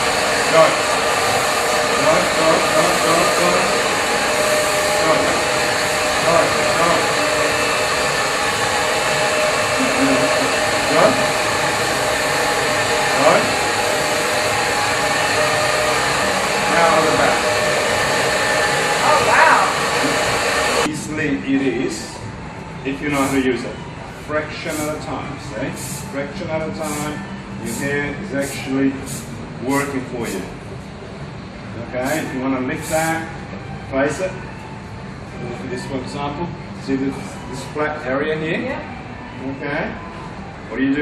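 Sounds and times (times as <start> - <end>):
hair dryer blowing: 0.0 - 20.9, 23.0 - 23.7, 24.7 - 26.1, 26.8 - 30.5.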